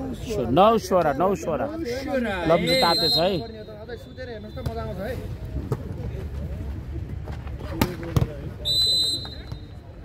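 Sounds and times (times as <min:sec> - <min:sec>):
referee whistle blast: 0:02.6 - 0:04.8, 0:08.6 - 0:09.8.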